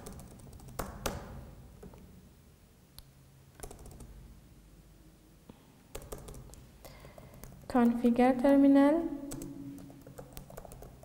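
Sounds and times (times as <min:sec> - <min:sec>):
laptop keyboard keystrokes: 0:00.0 - 0:02.0, 0:03.6 - 0:04.1, 0:05.9 - 0:08.6, 0:09.3 - 0:11.0.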